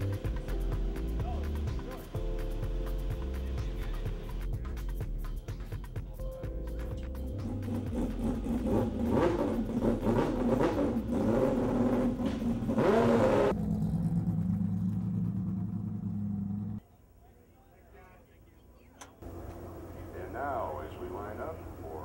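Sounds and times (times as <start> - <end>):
race car engines running: 6.8 - 16.8, 19.2 - 22.0
low steady hum: 13.5 - 22.0.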